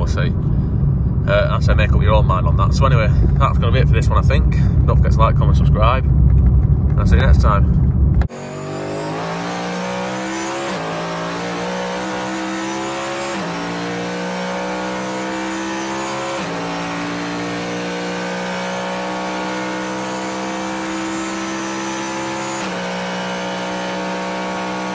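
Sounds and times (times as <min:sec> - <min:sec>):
car engine accelerating: 0:00.0 - 0:24.9.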